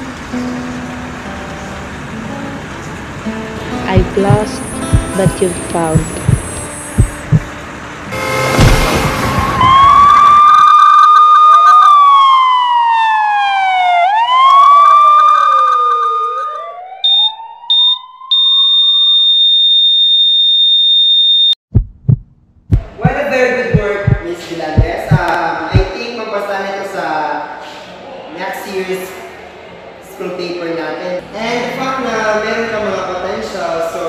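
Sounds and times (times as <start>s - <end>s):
high electronic beeps: 3.9s - 7.5s, 17.0s - 21.6s
burst of noise: 8.1s - 10.6s
emergency siren wailing: 8.1s - 19.4s
long steady beep: 17.0s - 21.6s.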